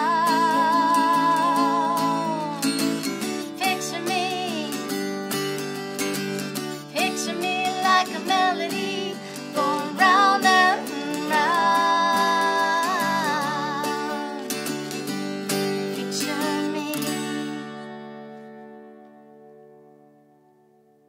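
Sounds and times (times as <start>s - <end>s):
woman singing: 0.0s - 5.7s, 6.6s - 17.8s
acoustic guitars: 0.0s - 21.0s.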